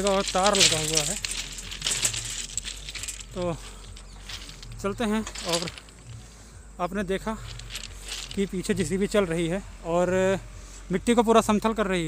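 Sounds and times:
ballast stones crunching: 0:00.0 - 0:06.2, 0:07.3 - 0:08.9.

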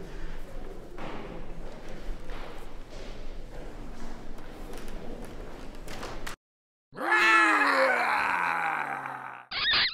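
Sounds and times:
person roaring like a dinosaur: 0:07.0 - 0:09.5.

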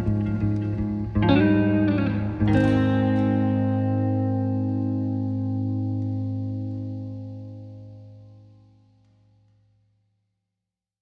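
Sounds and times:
guitar chord ringing: 0:00.0 - 0:09.0.

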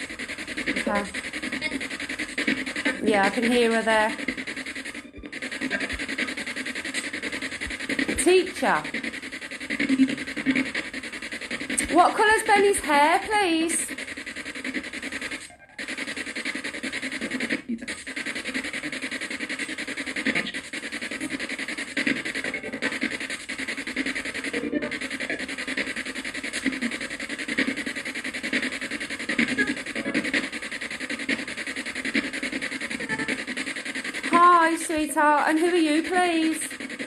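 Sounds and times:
radio sweep static: 0:00.0 - 0:37.0
clipped voice fragments: 0:00.3 - 0:37.0.

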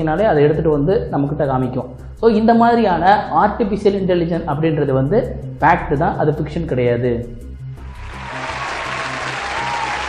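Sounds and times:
background music with low beat: 0:00.0 - 0:10.0
applause: 0:07.8 - 0:10.0.

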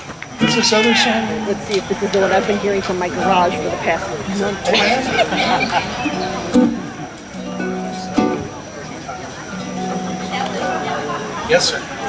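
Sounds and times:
accordion holding low note: 0:00.4 - 0:11.4
ukulele plucks: 0:01.4 - 0:11.4.

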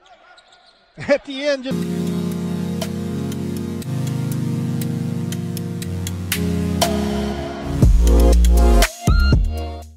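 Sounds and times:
sustained chords with ticking beat: 0:01.7 - 0:09.9.

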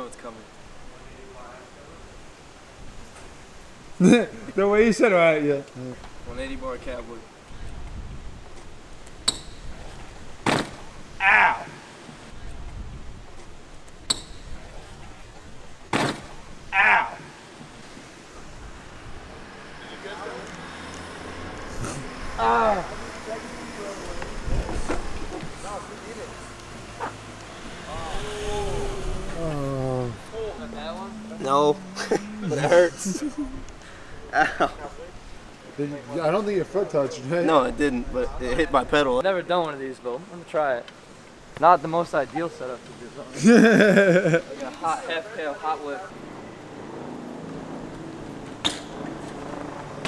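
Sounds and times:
motor vehicle humming: 0:17.6 - 0:33.9
man groaning in pain: 0:28.1 - 0:33.4.

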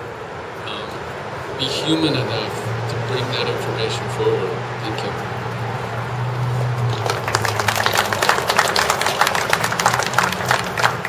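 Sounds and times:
crowd applauding: 0:06.5 - 0:11.0.

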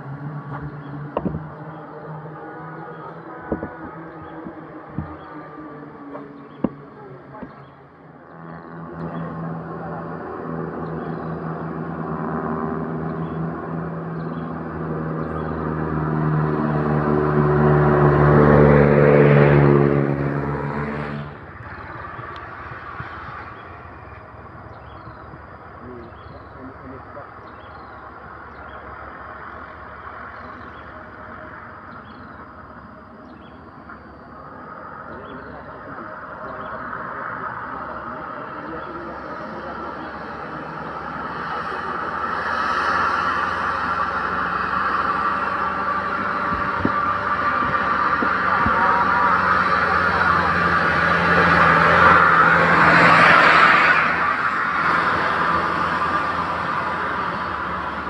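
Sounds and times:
traffic and road noise: 0:00.0 - 0:58.0
diesel truck engine labouring: 0:30.9 - 0:58.0.

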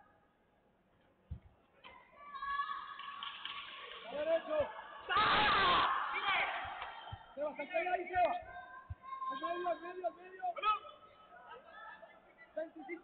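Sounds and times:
voices shouting in a hall: 0:01.8 - 0:03.2, 0:04.0 - 0:13.0
loud yell: 0:05.0 - 0:07.1.

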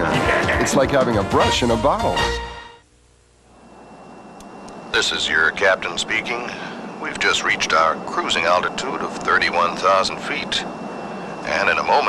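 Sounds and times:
airliner cabin noise in flight: 0:03.0 - 0:12.0.

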